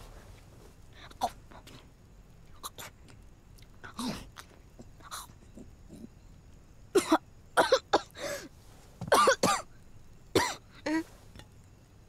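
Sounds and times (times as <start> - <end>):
man coughing: 9.1 - 9.7, 10.4 - 11.0.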